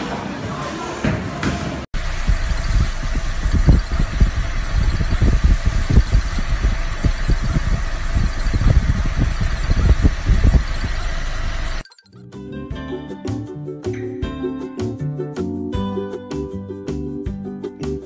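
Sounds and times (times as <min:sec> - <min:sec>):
bowling alley hall noise: 0:00.0 - 0:04.4
low thumps: 0:02.0 - 0:11.8.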